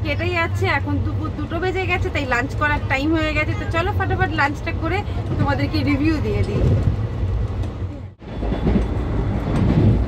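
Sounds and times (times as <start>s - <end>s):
train carriage rumble: 0.0s - 10.0s.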